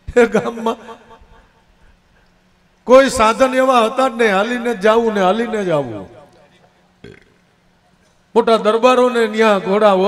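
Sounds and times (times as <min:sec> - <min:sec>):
man talking: 0:02.9 - 0:06.6, 0:08.4 - 0:10.0.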